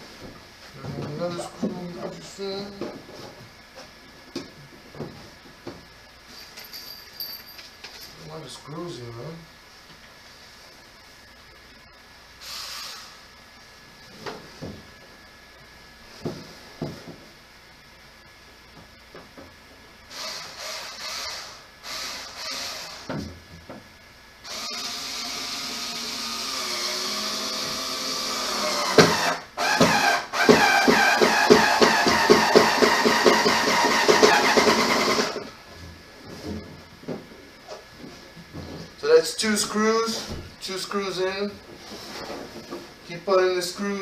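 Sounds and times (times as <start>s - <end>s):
power drill driving screws: 20.1s - 23.1s, 24.5s - 35.5s.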